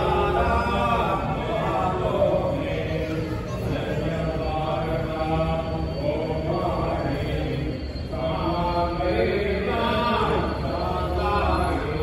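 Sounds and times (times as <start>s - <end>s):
voices chanting a mantra: 0.0s - 12.0s.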